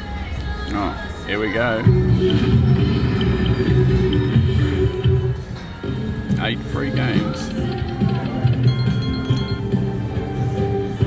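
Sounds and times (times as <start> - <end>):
slot machine background music: 0.7 - 11.0
slot machine win chimes: 6.9 - 10.1.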